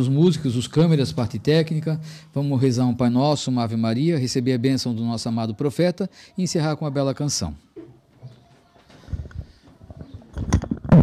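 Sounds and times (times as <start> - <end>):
faint rustling: 7.8 - 11.0.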